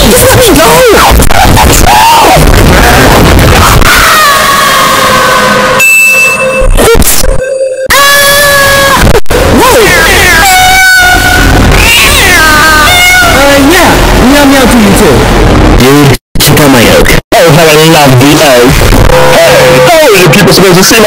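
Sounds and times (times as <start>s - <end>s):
distorted screaming voices: 0.0s - 21.0s.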